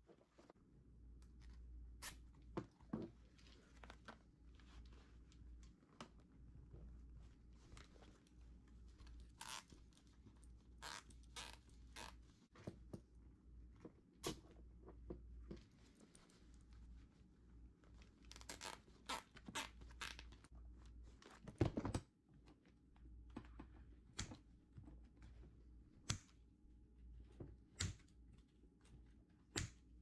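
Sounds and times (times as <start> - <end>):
zip ties ratcheting: 9.4 - 9.6.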